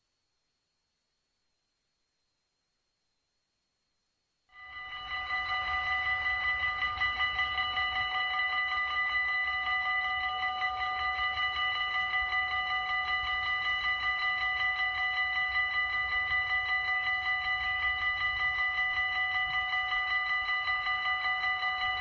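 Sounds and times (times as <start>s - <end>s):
level crossing bell ringing: 4.6s - 22.0s.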